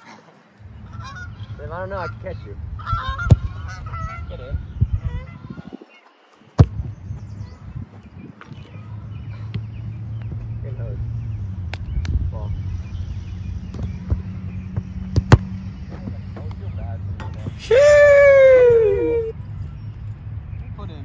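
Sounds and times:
steady low rumble: 0:00.6 - 0:05.5, 0:06.6 - 0:17.6
football kicks: 0:03.2 - 0:03.6, 0:06.6 - 0:06.9, 0:13.7 - 0:16.5
person's long falling cry: 0:17.6 - 0:19.3.

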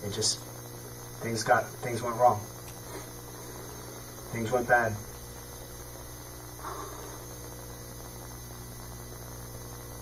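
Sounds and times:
low electrical hum with hiss: 0:00.0 - 0:10.0.

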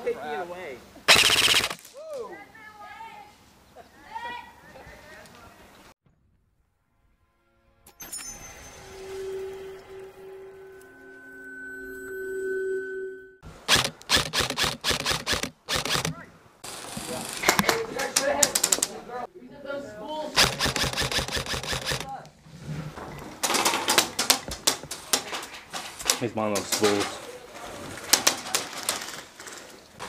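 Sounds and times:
airsoft guns firing: 0:01.1 - 0:02.0, 0:13.7 - 0:16.2, 0:17.5 - 0:19.0, 0:20.4 - 0:22.2, 0:28.0 - 0:29.2
droning tones: 0:06.9 - 0:13.4.

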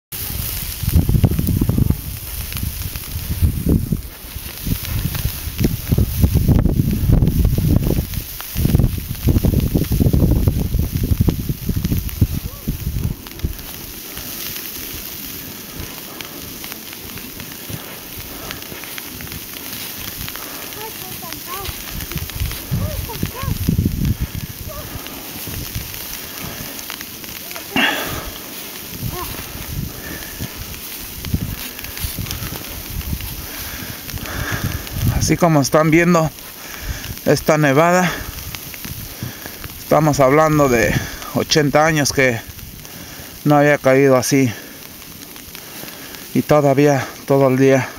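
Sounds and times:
steady hiss: 0:00.1 - 0:47.9
low rumbling on microphone: 0:00.2 - 0:14.2, 0:21.7 - 0:26.8, 0:27.8 - 0:35.3.

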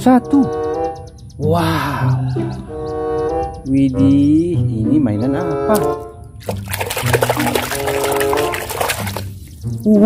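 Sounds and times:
background music: 0:00.0 - 0:10.0
water splashing in a plastic bucket: 0:05.8 - 0:09.7.

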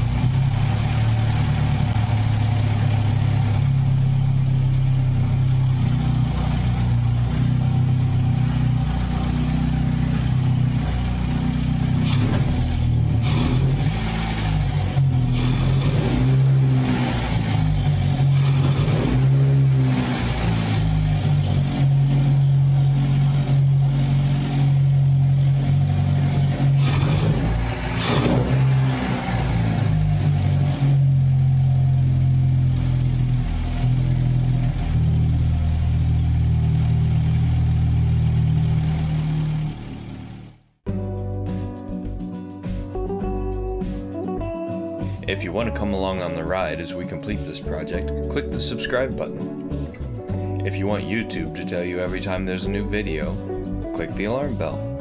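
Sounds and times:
car engine revving and idling: 0:00.0 - 0:40.8, 0:45.0 - 0:55.0.

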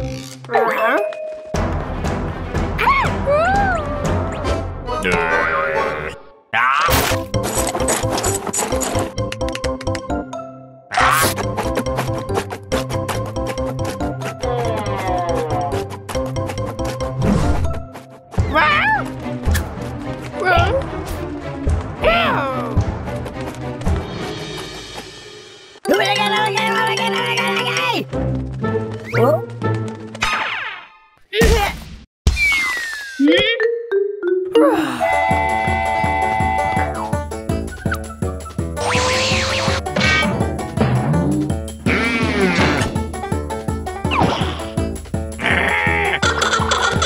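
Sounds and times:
cartoon music with drums: 0:01.2 - 0:05.8, 0:10.9 - 0:29.9, 0:32.3 - 0:47.0
cartoon music with steady beat: 0:32.3 - 0:47.0.

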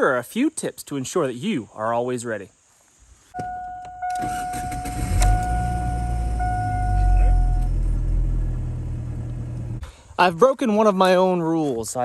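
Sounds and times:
dashboard warning chime: 0:03.4 - 0:08.0
truck engine starting and running: 0:03.4 - 0:10.2.

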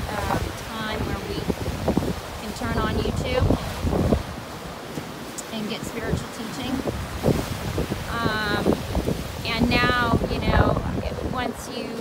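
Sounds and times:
waves on cobble beach: 0:00.0 - 0:12.0
wind buffeting microphone: 0:00.0 - 0:12.0.

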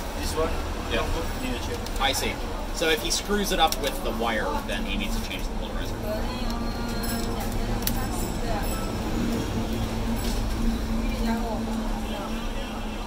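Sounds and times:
background voices talking: 0:00.0 - 0:13.0.

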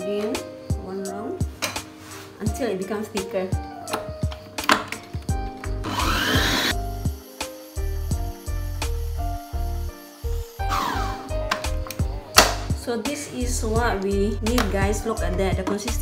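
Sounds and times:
background music with bass beat: 0:05.3 - 0:16.0.

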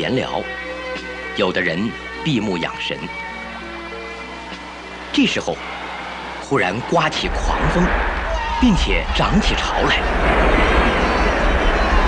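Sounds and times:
heavy waves: 0:04.9 - 0:12.0
deep rumble: 0:07.3 - 0:12.0
wind: 0:07.8 - 0:12.0.

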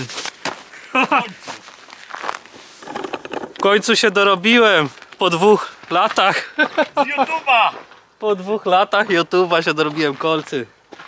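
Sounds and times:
ice cleat footsteps on frozen gravel: 0:00.0 - 0:08.7, 0:09.6 - 0:11.0.

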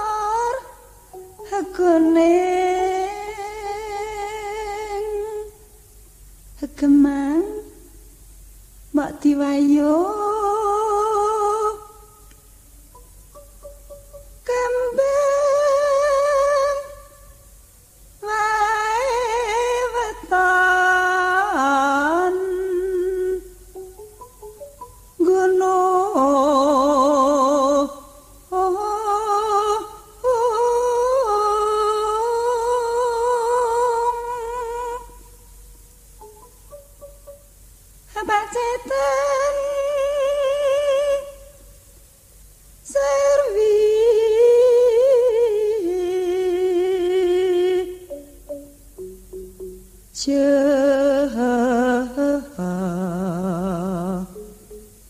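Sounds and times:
woman singing a long note: 0:13.6 - 0:17.2, 0:18.2 - 0:23.8, 0:25.2 - 0:35.4, 0:38.1 - 0:41.6, 0:42.8 - 0:48.3, 0:50.1 - 0:54.8.

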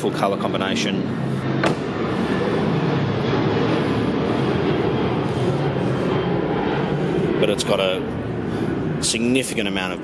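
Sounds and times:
car engine and road noise: 0:00.0 - 0:09.7.

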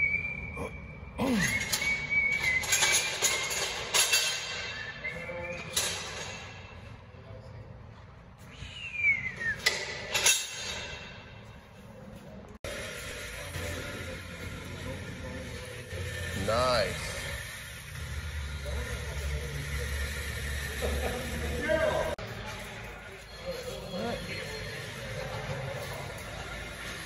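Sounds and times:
steady background noise: 0:00.0 - 0:27.0
high-pitched metal roller squeals: 0:01.2 - 0:06.8, 0:12.7 - 0:22.1, 0:22.9 - 0:27.0.

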